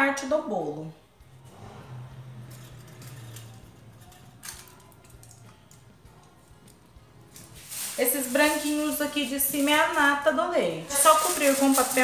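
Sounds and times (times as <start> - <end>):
faint background music: 0.0 - 12.0
handling noises: 2.3 - 10.1.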